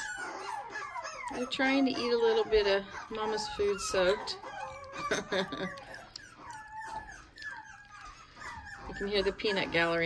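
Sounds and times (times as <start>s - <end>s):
puppies whining: 0.0s - 10.0s.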